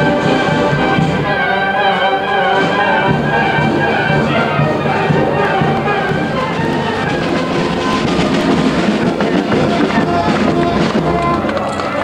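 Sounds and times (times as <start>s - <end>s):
crowd noise: 0.0s - 12.0s
outdoor band music: 0.0s - 12.0s.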